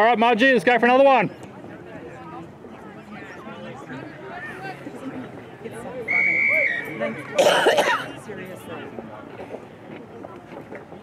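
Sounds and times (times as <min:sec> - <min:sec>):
referee's whistle blast: 0:06.1 - 0:07.0
person coughing: 0:07.4 - 0:08.1.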